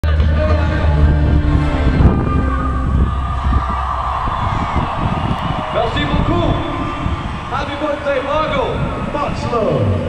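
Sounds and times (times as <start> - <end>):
wind buffeting microphone: 0.8 - 10.0.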